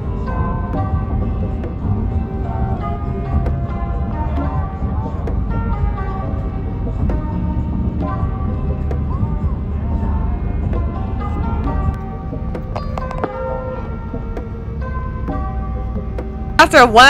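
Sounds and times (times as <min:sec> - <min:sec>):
background music: 0:00.0 - 0:17.0
low road rumble: 0:00.0 - 0:17.0.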